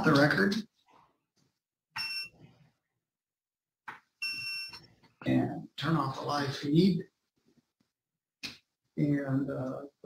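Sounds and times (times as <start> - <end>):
short electronic beeps: 2.0 - 2.4.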